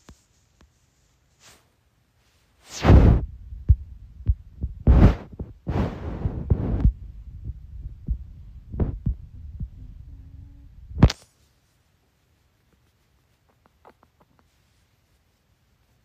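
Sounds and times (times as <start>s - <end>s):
loud thumps: 2.7s - 10.0s
rustling: 11.0s - 16.0s.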